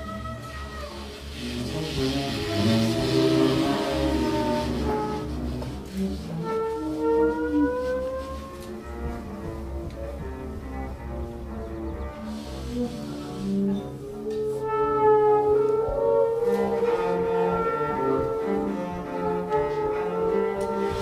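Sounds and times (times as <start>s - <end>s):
cello: 0.0s - 21.0s
double bass: 0.0s - 21.0s
trumpet: 0.0s - 21.0s
tenor saxophone: 0.3s - 10.0s, 10.8s - 21.0s.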